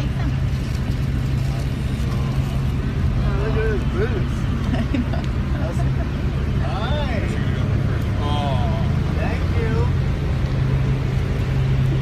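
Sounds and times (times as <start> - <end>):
fire engine idling: 0.0 - 12.0.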